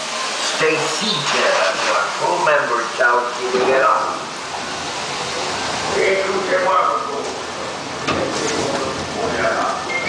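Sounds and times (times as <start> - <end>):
water rushing in channel: 0.0 - 10.0.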